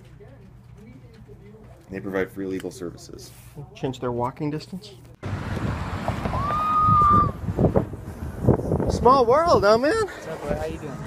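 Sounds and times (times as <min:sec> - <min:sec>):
wind buffeting microphone: 0:05.3 - 0:11.0.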